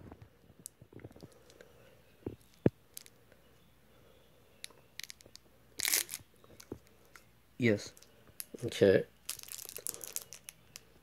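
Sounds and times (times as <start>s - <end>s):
crinkling rustle: 8.0s - 11.0s.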